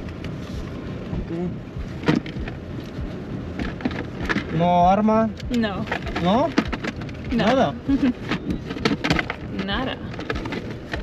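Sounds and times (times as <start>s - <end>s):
low rumbling noise: 0.0s - 11.0s
handling and rustling: 5.6s - 11.0s.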